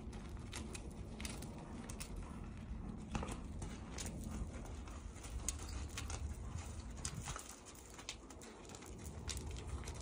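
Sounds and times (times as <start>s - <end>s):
horse hooves on dirt: 0.0s - 10.0s.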